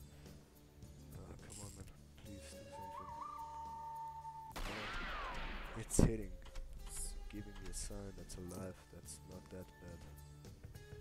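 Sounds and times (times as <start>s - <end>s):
whoosh with bending whistle: 2.7s - 5.4s
loud gunshot: 4.6s - 6.2s.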